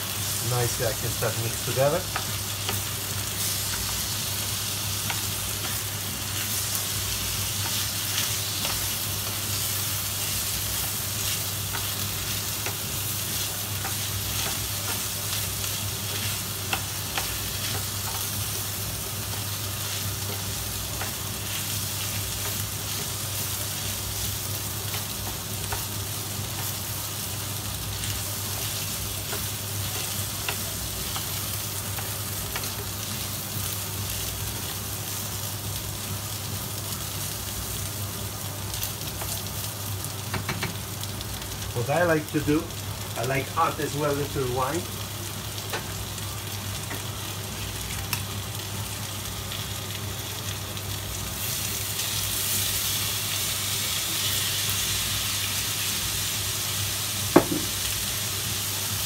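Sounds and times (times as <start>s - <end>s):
food sizzling in oil: 0.0s - 59.0s
spoon knocking on pan: 40.3s - 40.8s, 57.4s - 57.8s.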